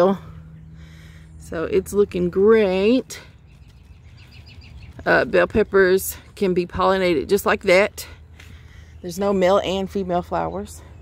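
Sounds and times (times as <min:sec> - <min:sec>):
low outdoor hum: 0:00.0 - 0:11.0
faint bird chirping: 0:03.2 - 0:06.3.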